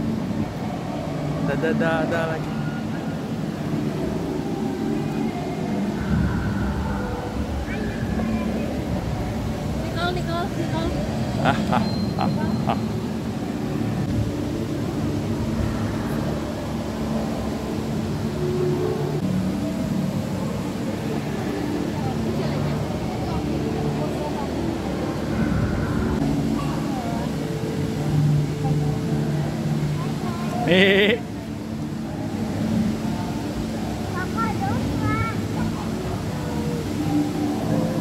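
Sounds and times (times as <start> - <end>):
people talking: 9.8 - 13.0, 21.9 - 25.2, 26.5 - 27.4, 29.8 - 31.3, 34.0 - 37.8.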